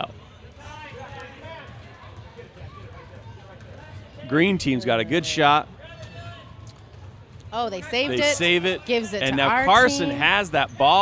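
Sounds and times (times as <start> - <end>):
distant voices in a hall: 0.0 - 11.0.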